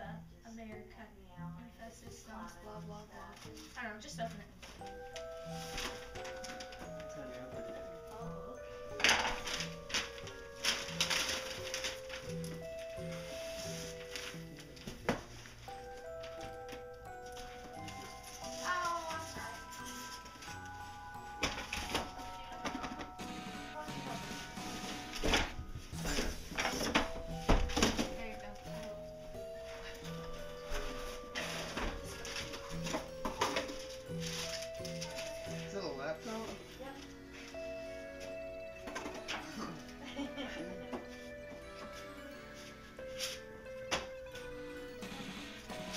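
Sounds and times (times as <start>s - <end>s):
background music: 0.0s - 45.9s
cardboard box and paper rustling: 8.9s - 20.8s, 24.2s - 29.0s, 29.6s - 37.1s.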